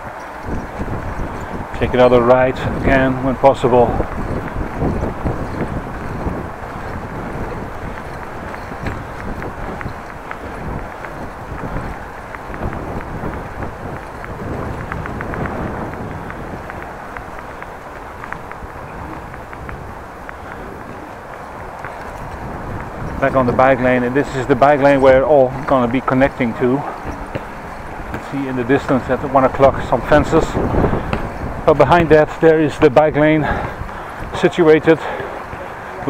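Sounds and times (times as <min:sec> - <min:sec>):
bicycle tyres rumbling on bricks: 0:00.0 - 0:36.0
wind noise on microphone: 0:00.0 - 0:36.0.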